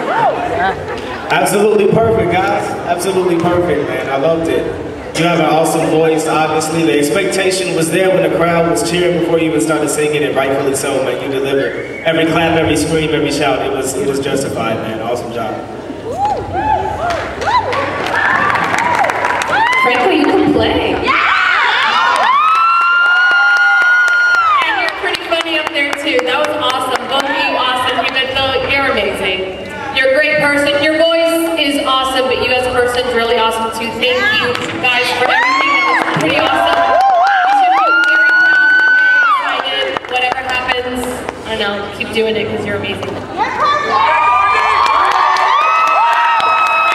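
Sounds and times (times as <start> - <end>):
audience cheering: 16.0 - 25.0, 34.4 - 40.0, 43.5 - 46.9
scattered clapping: 17.0 - 20.4, 34.4 - 39.0, 39.6 - 41.4.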